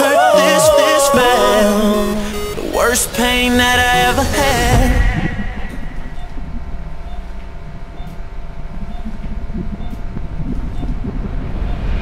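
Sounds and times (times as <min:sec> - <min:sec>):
heart monitor beeping: 0:01.0 - 0:12.0
steady low rumble: 0:01.1 - 0:12.0
swell of noise: 0:10.7 - 0:12.0.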